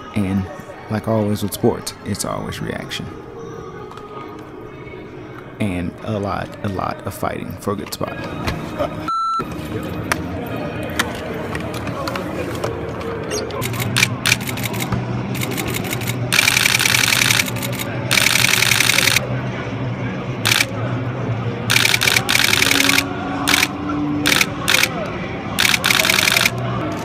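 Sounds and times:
camera shutter bursts: 0:13.6 - 0:19.2, 0:20.5 - 0:20.7, 0:21.7 - 0:23.7, 0:24.3 - 0:24.9, 0:25.6 - 0:26.5.

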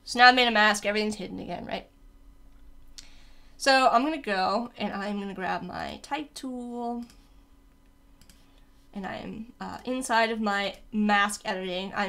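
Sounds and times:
faint low hum: 0:00.0 - 0:12.0
computer mouse and key clicks: 0:07.0 - 0:07.3, 0:08.2 - 0:08.6.

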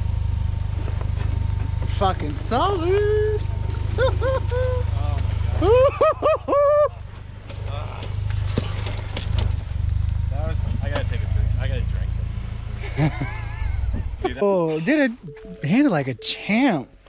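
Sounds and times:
pickup truck engine low drone: 0:00.0 - 0:14.4.

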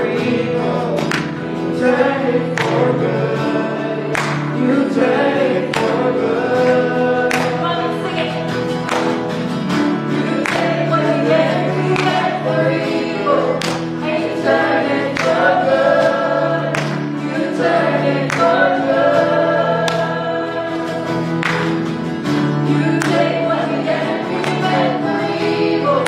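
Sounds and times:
women singing worship song: 0:00.0 - 0:08.7, 0:10.0 - 0:21.6, 0:22.4 - 0:26.0
acoustic guitar: 0:00.0 - 0:26.0
keyboard: 0:00.0 - 0:26.0.

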